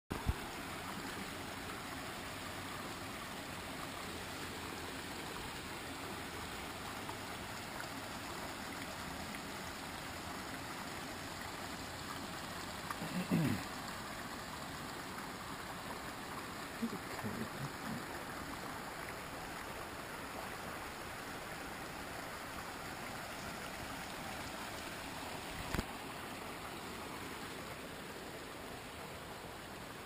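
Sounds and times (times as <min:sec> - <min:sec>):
creek rushing over rocks: 0:00.1 - 0:30.0.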